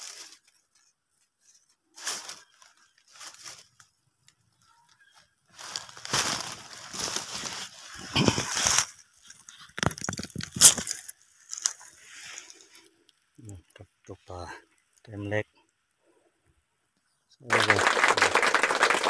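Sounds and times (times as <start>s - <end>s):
dry leaves rustling and crunching: 0.0s - 0.8s, 1.4s - 4.3s, 5.5s - 12.6s.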